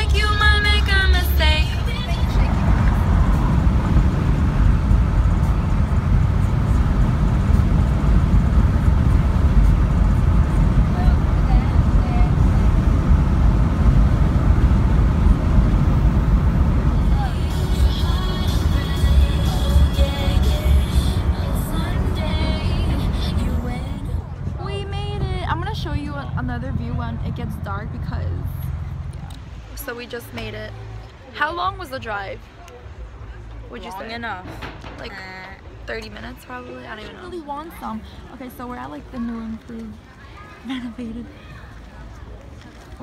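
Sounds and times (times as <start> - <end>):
song with vocals: 0.0 - 3.0, 16.9 - 26.0
car road rumble: 0.0 - 43.0.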